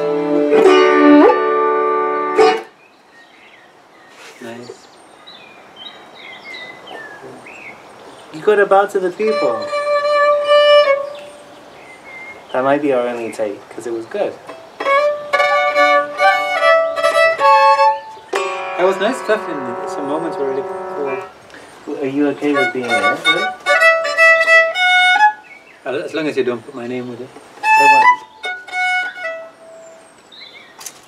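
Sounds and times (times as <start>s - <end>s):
violin bowed notes: 0.0s - 2.7s, 8.7s - 11.6s, 14.4s - 25.5s, 27.6s - 30.0s
faint bird chirp: 2.7s - 8.6s, 10.9s - 13.6s.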